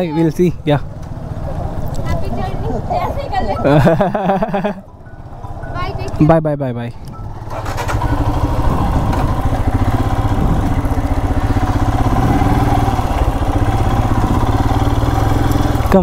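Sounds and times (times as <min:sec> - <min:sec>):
motorcycle engine running: 0:00.0 - 0:06.4, 0:07.1 - 0:16.0
road and wind noise: 0:00.0 - 0:16.0.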